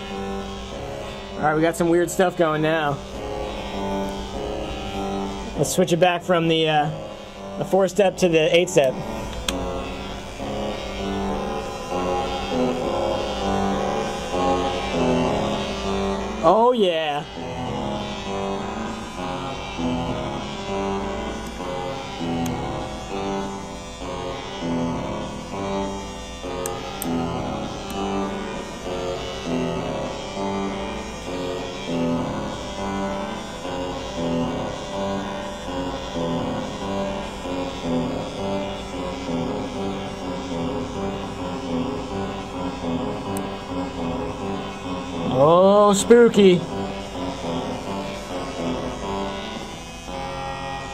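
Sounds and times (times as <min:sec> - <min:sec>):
looping stepped synth tones: 0:00.0 - 0:50.9.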